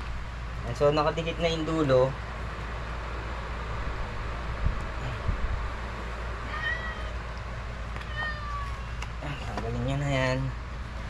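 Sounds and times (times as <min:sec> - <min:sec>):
steady low hum: 0:00.0 - 0:11.0
cat meowing: 0:06.4 - 0:07.4, 0:08.0 - 0:09.0.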